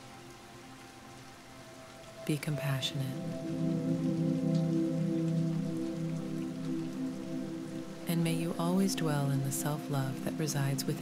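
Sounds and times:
rain hissing: 0.0s - 11.0s
soft ambient meditation music: 0.0s - 11.0s.

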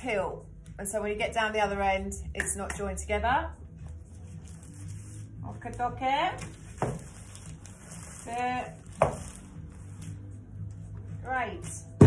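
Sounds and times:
woman's voice: 0.0s - 3.6s, 5.4s - 6.5s, 8.2s - 8.8s, 11.2s - 12.0s.

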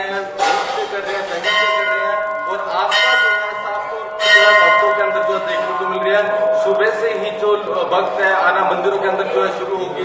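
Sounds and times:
temple bell ringing: 0.0s - 10.0s.

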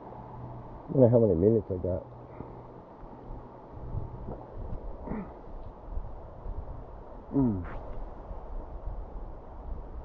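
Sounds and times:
wind rumbling on microphone: 3.2s - 10.0s.

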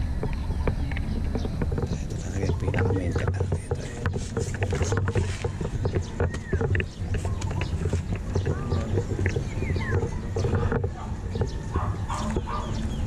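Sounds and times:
indistinct voices: 0.0s - 13.0s.

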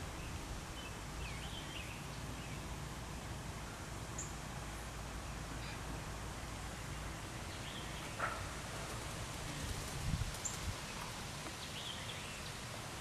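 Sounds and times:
wind rustling leaves: 0.0s - 13.0s.

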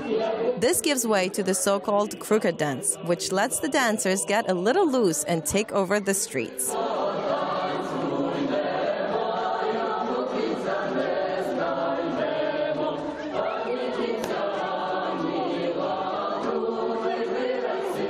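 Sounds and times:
group singing folk song: 0.0s - 18.0s.

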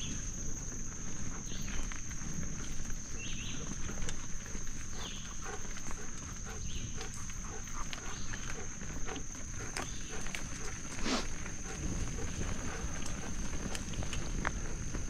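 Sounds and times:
bicycle tyres rumbling on dirt: 0.0s - 15.0s
wind on microphone: 11.4s - 15.0s.

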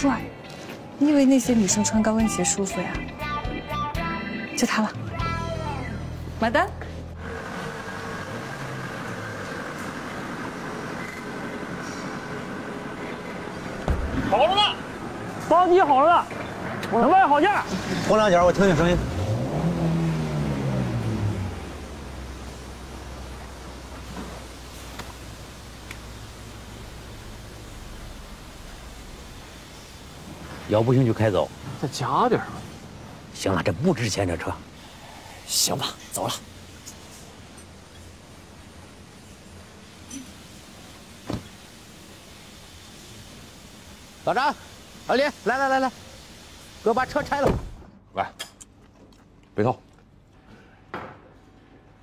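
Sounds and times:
low outdoor rumble: 17.6s - 33.8s
car engine revving then idling: 18.1s - 30.4s
vehicle door shutting: 41.2s - 41.6s, 47.3s - 47.9s.

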